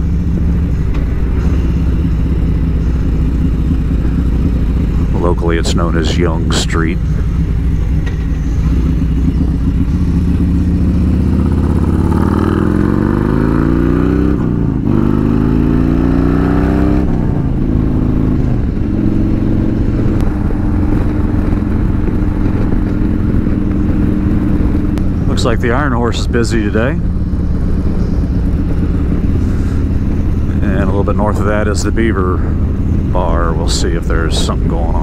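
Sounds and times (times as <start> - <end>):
motorcycle engine accelerating: 0.0 - 35.0.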